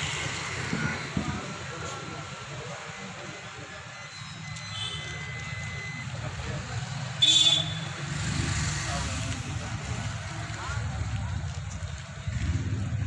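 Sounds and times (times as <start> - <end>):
crowd murmur: 0.0 - 13.0
vehicle horn toot: 7.2 - 7.9.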